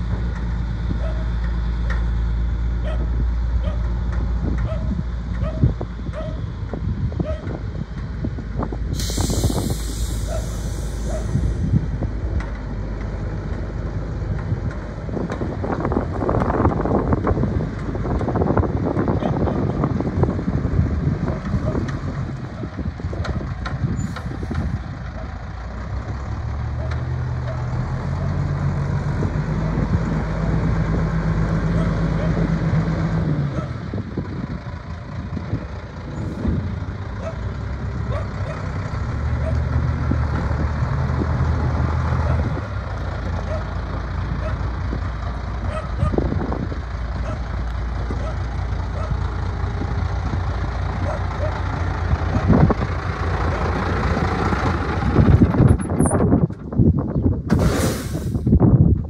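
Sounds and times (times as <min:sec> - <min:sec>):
diesel truck engine idling and revving: 0:00.0 - 0:59.0.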